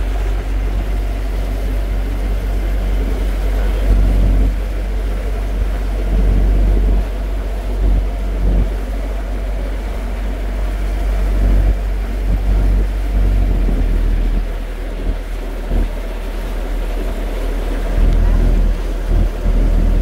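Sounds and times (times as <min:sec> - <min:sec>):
boat engine low rumble: 0:00.0 - 0:20.0
wind buffeting microphone: 0:00.0 - 0:20.0.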